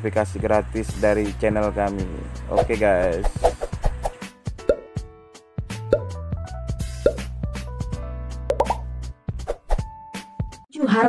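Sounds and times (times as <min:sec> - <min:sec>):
cartoon pops: 0:07.0 - 0:07.3, 0:08.5 - 0:08.9.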